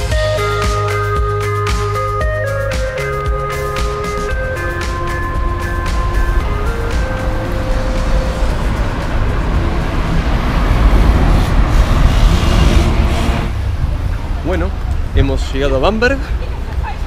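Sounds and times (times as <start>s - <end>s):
background music: 0.0s - 11.4s
city traffic low rumble: 0.0s - 17.0s.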